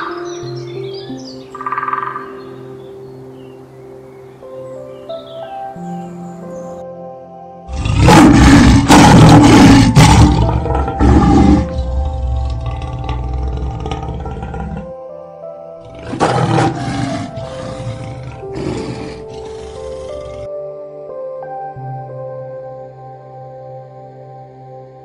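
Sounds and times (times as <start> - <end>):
soft piano music: 0.0 - 25.0
lion roaring: 7.7 - 14.9, 15.8 - 20.5.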